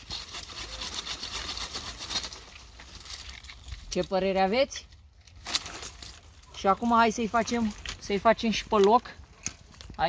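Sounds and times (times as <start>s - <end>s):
hand saw cutting branch: 0.0s - 3.0s.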